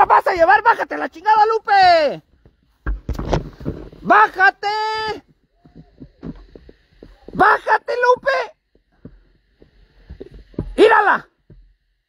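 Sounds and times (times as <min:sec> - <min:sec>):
man shouting: 0:00.0 - 0:02.2, 0:04.0 - 0:05.8, 0:07.3 - 0:08.6, 0:10.7 - 0:11.3
dull thumps and knocks: 0:02.4 - 0:04.1, 0:05.0 - 0:07.4, 0:08.1 - 0:11.8.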